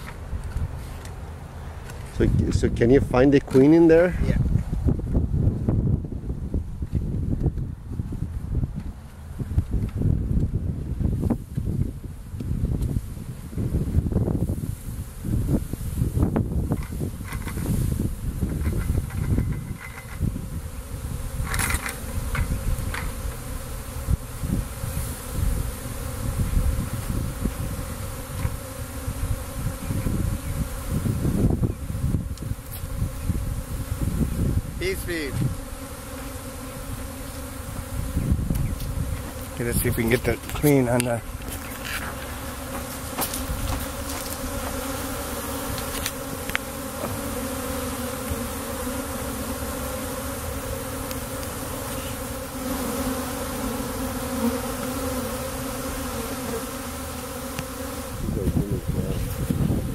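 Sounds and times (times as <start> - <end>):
honeybees buzzing: 11.0 - 59.9.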